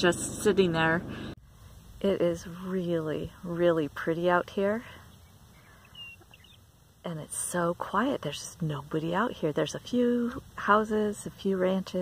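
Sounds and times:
faint low rumble: 0.0s - 12.0s.

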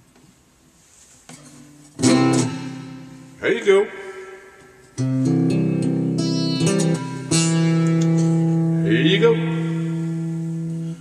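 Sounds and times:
acoustic guitar strumming: 1.3s - 11.0s.

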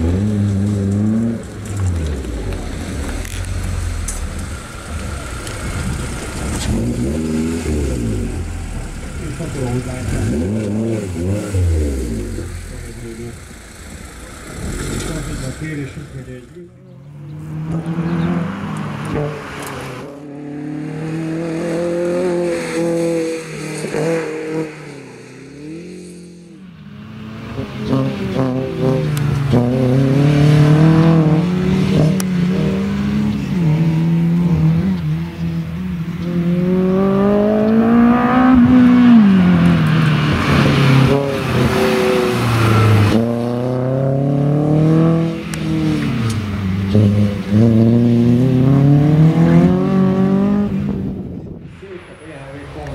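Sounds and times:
race car engine revving: 0.0s - 52.9s.

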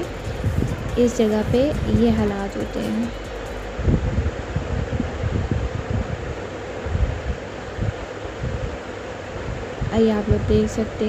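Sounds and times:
steady outdoor noise: 0.0s - 11.0s
wind buffeting microphone: 0.0s - 11.0s.

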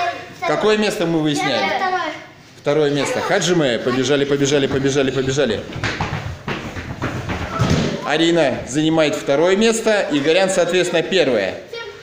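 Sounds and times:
children running footsteps: 3.9s - 9.2s.

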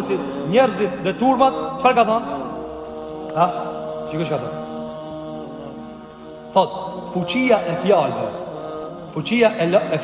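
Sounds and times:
man speaking: 0.0s - 2.7s, 3.4s - 4.7s, 6.5s - 8.4s, 9.1s - 10.0s
droning background music: 0.0s - 10.0s.

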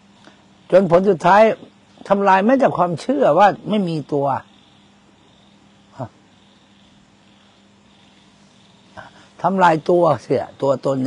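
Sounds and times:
faint background hiss: 0.0s - 11.0s
steady low hum: 0.0s - 11.0s.

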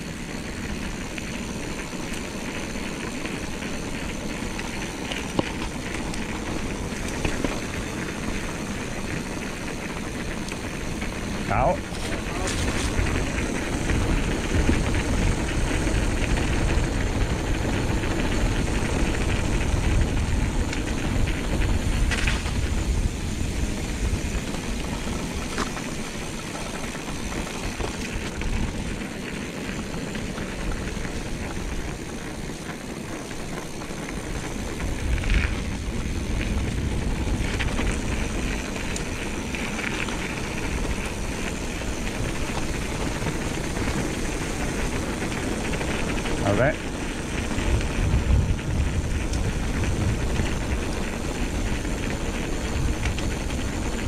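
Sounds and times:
bike rattling over bumps: 0.0s - 54.0s
bike tyres rumbling on gravel: 0.0s - 54.0s
wind on microphone: 11.4s - 26.4s, 33.8s - 54.0s.

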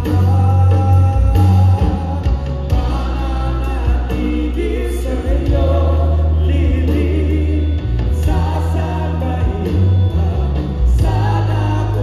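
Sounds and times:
deep bass notes: 0.0s - 12.0s
drums: 0.0s - 12.0s
electric guitar: 0.0s - 12.0s
singers: 0.0s - 12.0s.

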